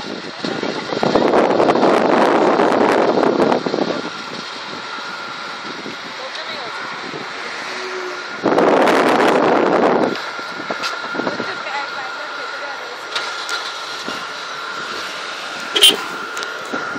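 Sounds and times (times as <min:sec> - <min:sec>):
car passing by: 0:06.6 - 0:08.3.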